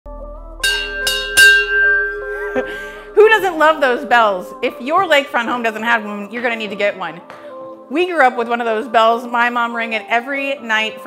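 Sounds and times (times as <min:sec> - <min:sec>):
soft background music: 0:00.1 - 0:11.0
dinner bell ringing: 0:00.6 - 0:05.9.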